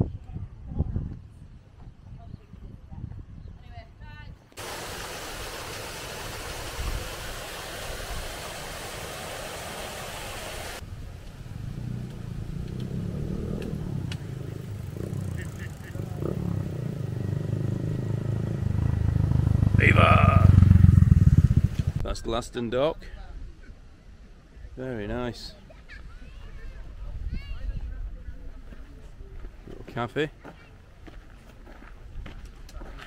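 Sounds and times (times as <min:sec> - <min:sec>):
steady hiss: 0:04.6 - 0:11.5
motorcycle riding up: 0:10.8 - 0:22.1.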